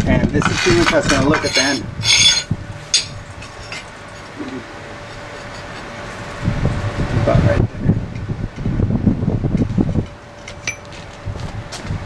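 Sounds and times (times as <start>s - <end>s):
light metal scraping: 0.3s - 5.9s
metal parts clinking: 0.4s - 4.3s, 10.5s - 10.9s.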